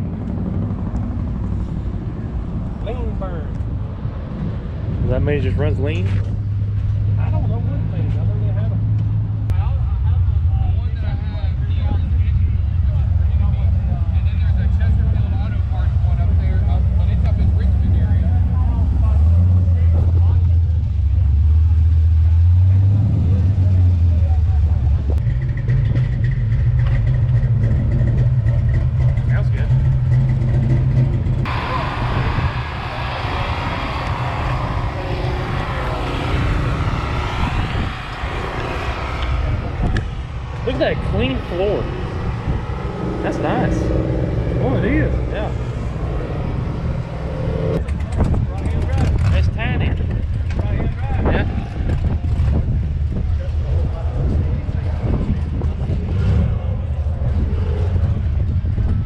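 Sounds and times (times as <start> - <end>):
car engine rumbling: 0.0 - 59.0.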